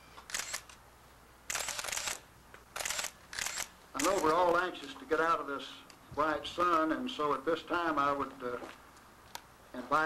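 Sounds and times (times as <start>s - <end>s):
camera motor winder whirs: 0.3s - 0.8s, 1.5s - 2.2s, 2.8s - 4.4s.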